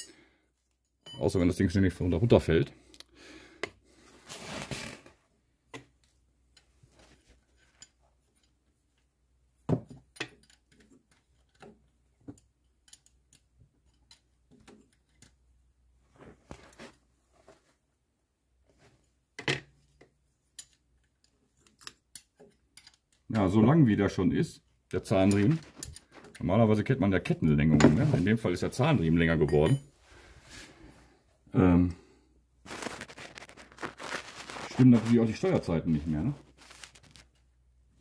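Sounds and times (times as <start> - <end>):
metal parts clicking and rattling: 10.0 - 11.8, 12.4 - 15.4, 20.5 - 23.3, 25.2 - 26.4.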